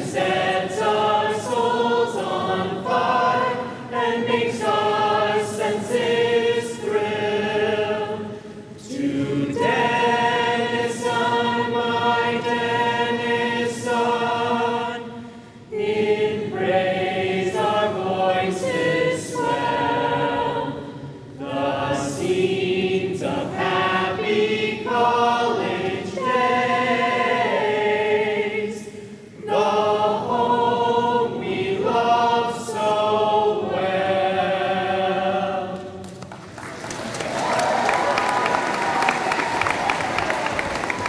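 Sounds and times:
crowd singing: 0:00.0 - 0:36.1
small group of singers: 0:00.0 - 0:36.3
applause: 0:36.0 - 0:41.0.

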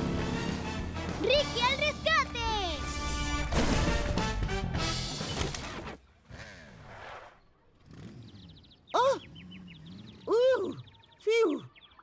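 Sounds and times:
cartoon soundtrack music: 0:00.0 - 0:05.3.

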